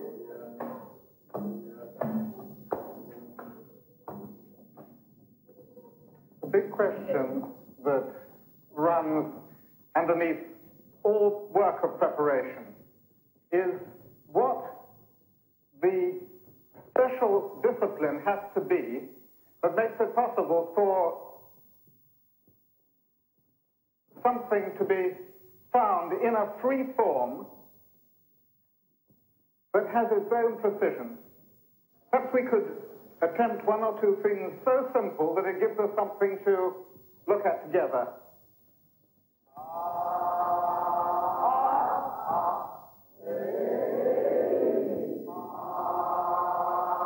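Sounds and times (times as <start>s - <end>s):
people singing held vocal tones: 39.5s - 47.0s.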